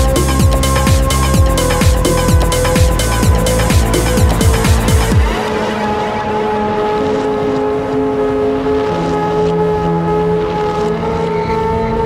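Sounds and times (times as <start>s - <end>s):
sustained synth chords: 0.0s - 12.0s.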